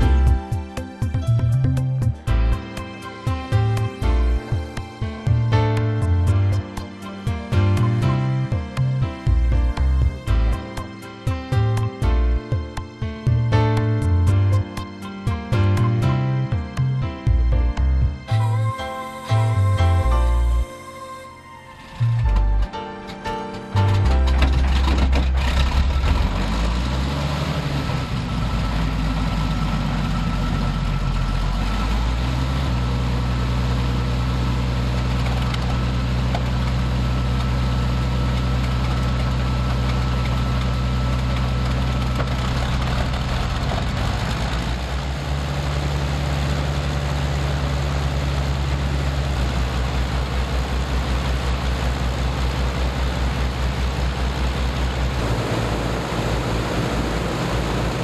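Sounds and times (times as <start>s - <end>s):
piston engines droning: 17.7s - 58.0s.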